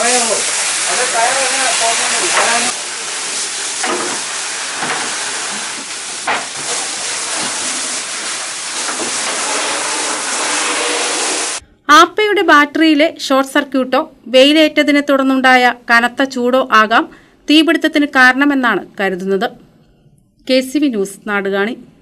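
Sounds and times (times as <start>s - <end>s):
fire hose water spraying: 0.0s - 11.6s.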